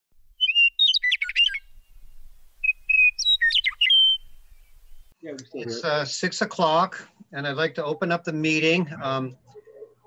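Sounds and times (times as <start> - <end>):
songbird singing: 0.2 - 5.2.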